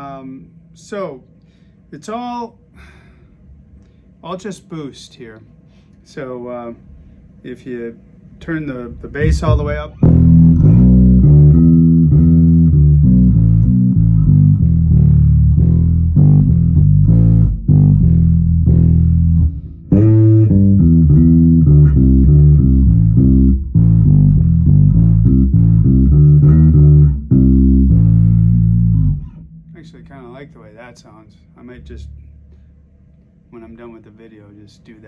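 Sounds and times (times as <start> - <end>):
bass guitar played fingerstyle: 9.1 - 31.0.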